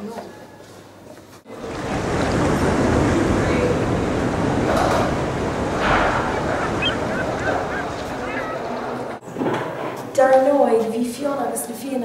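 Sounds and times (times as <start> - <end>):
sea waves and surf: 1.5 - 9.2.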